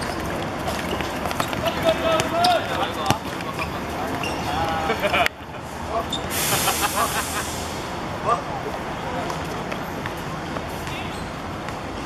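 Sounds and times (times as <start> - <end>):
players shouting: 1.3 - 5.2.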